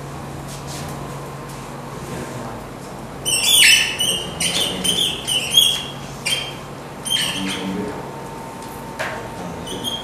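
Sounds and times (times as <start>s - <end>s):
marker squeaking on whiteboard: 3.2s - 7.8s, 9.6s - 10.0s.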